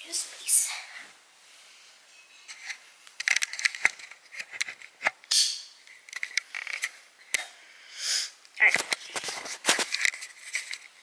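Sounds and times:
handling rustles: 8.7 - 11.0.

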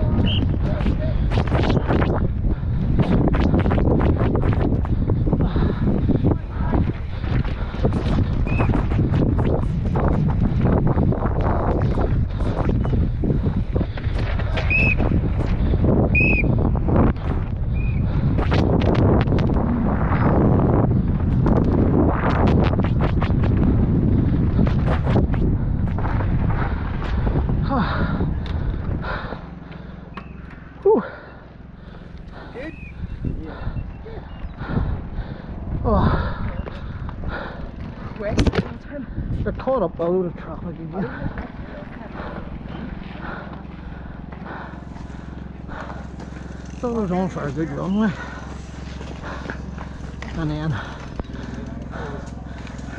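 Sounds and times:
wind rushing over microphone: 0.0 - 29.6, 32.2 - 52.9
bike rattling and knocking: 0.0 - 30.7, 40.9 - 52.9
tyres on loose dirt: 0.0 - 52.9.

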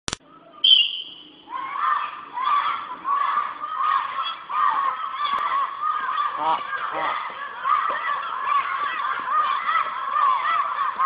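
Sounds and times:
children shouting: 0.2 - 11.0.

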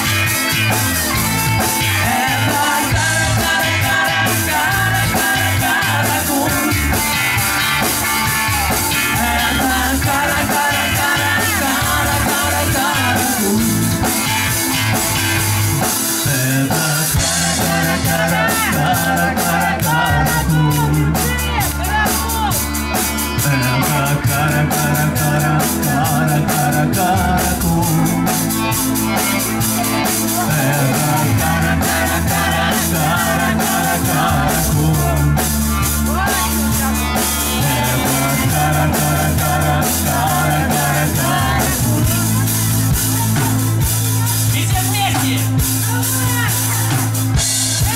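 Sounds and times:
bending melodic guitar line: 0.0 - 47.9
live rock band playing: 0.0 - 47.9.

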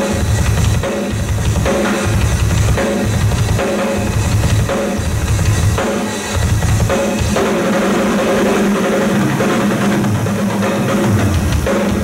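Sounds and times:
metal drum kit roll: 0.0 - 12.0.

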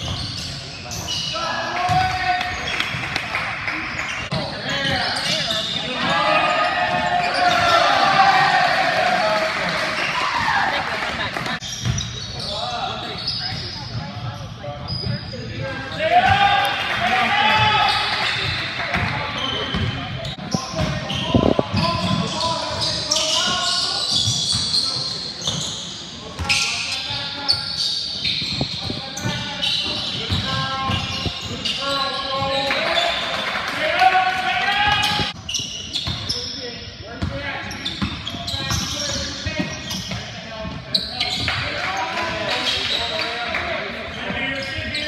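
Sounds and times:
people shouting and chattering: 0.0 - 45.0.

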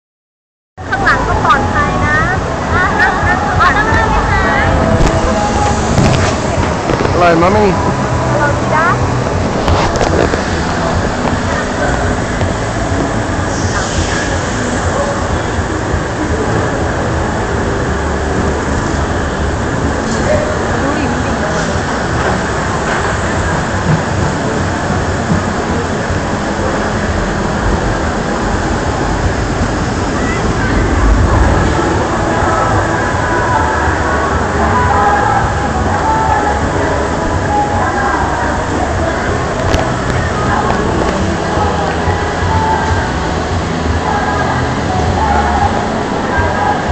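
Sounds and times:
water rushing and rumbling: 0.8 - 46.9.

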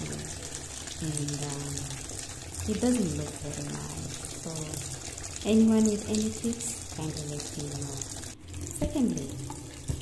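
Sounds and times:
kitchen tap running: 0.0 - 10.0
water splashing in a sink: 0.0 - 10.0.

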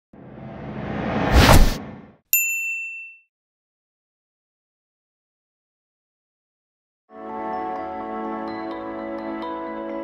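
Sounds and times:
whoosh: 0.2 - 2.2
bright bell-like ding: 2.4 - 3.3.

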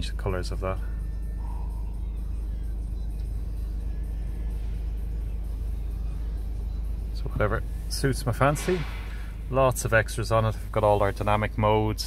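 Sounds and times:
diesel engine idling: 0.0 - 11.9.

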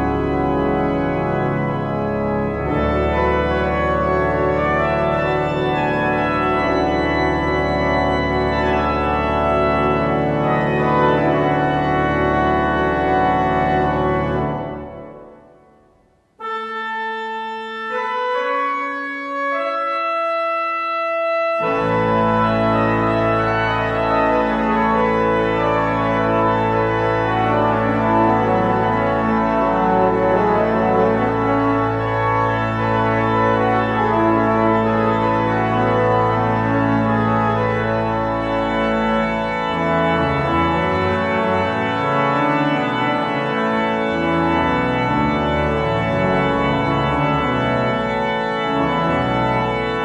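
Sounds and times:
church organ playing chords: 0.0 - 50.0.

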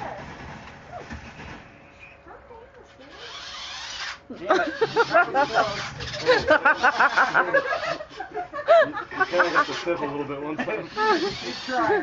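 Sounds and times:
toy car motor whirring: 3.0 - 8.4, 9.1 - 12.0.

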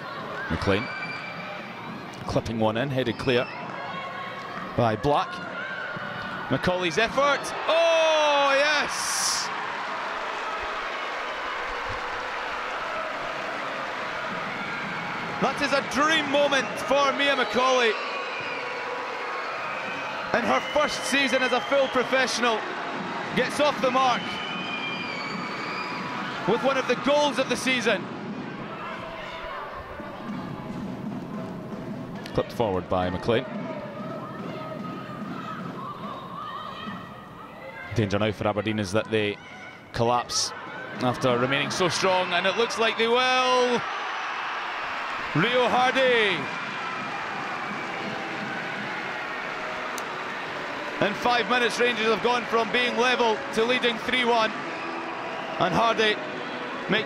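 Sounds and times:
crowd applauding and cheering: 3.5 - 32.4, 40.6 - 57.0.

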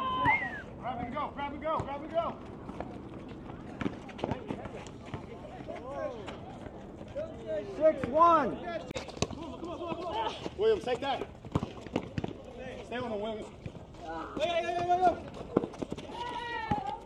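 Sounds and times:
players shouting: 16.0 - 17.0.

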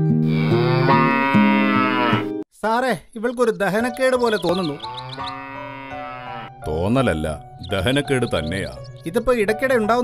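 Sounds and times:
cow mooing: 0.2 - 2.4, 4.8 - 6.6.

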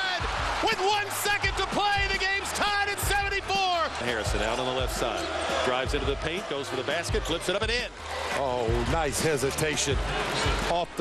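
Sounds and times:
announcer shouting excitedly: 0.0 - 3.9
background music with low bass: 0.1 - 11.0.

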